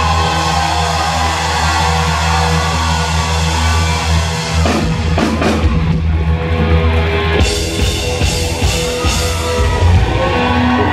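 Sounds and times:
distorted electric guitar and bass chord: 0.0s - 10.9s.

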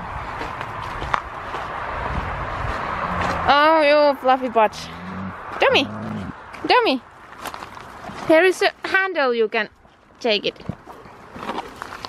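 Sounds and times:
footsteps crunching on gravel: 0.4s - 3.5s.

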